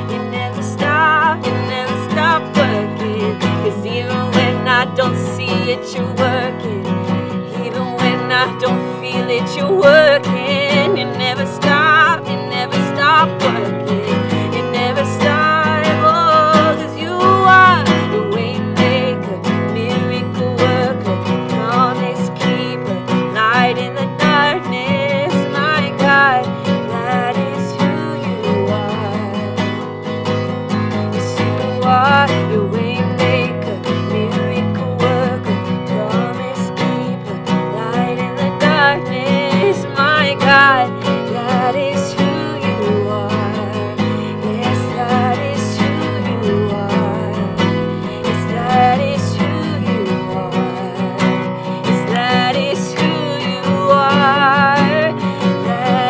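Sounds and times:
acoustic guitar strumming: 0:00.0 - 0:56.0
woman singing: 0:00.0 - 0:56.0.

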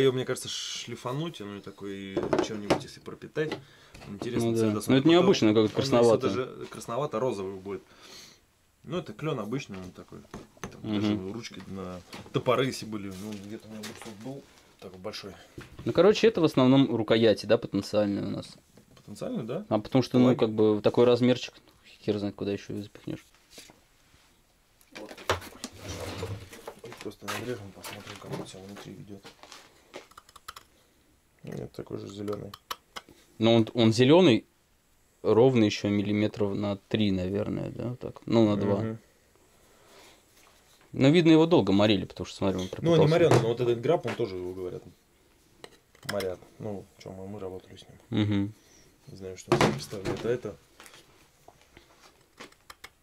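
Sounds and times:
man humming low: 0:48.1 - 0:48.6.

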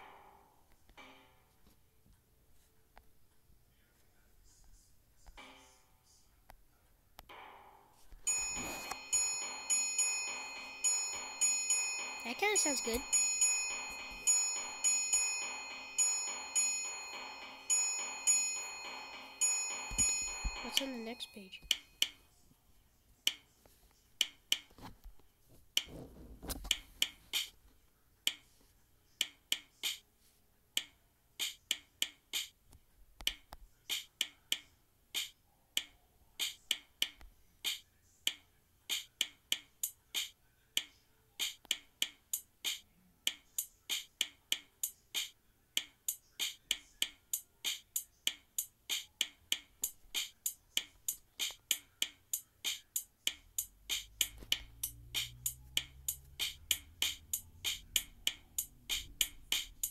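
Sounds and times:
sampled drum and cymbal beat: 0:38.9 - 0:40.3, 0:41.4 - 0:59.9.

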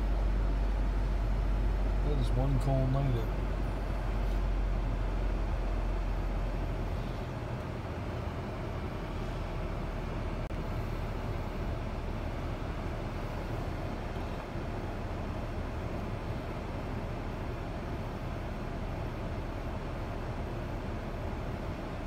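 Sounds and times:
car engine idling hum: 0:00.0 - 0:22.0.

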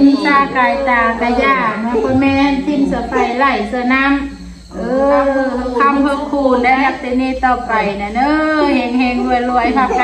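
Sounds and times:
woman speaking in sing-song voice: 0:00.0 - 0:04.2, 0:04.8 - 0:10.0.

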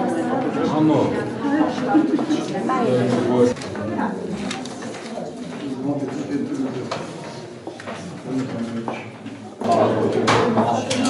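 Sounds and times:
people talking: 0:09.6 - 0:11.0.

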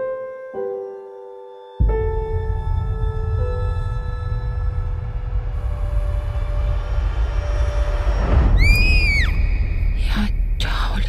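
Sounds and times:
low rumbling drone: 0:01.8 - 0:11.0
shrill screech: 0:08.6 - 0:09.6.

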